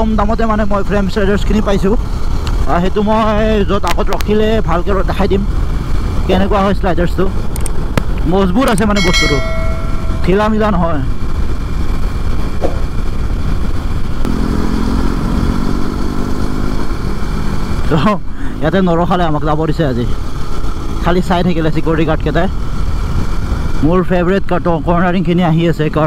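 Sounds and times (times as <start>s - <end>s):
motorcycle engine hum: 1.8s - 17.9s
man talking: 8.3s - 9.5s.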